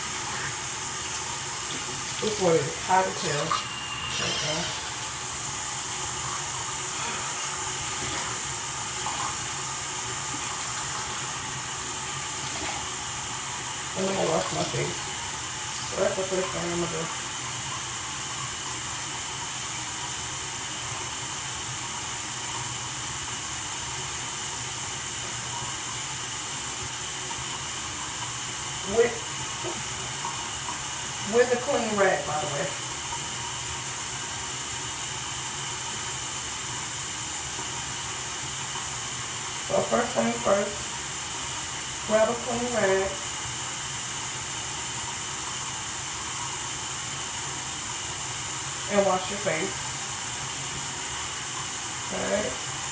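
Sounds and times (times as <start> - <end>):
steady hiss: 0.0 - 21.8
washcloth on face: 0.0 - 22.4
tap water running: 0.0 - 52.9.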